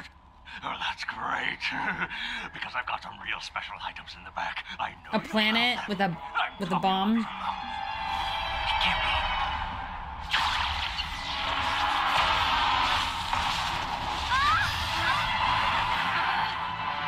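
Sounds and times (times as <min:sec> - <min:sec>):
background score music: 0:05.2 - 0:17.0
noisy sound effect: 0:08.6 - 0:17.0.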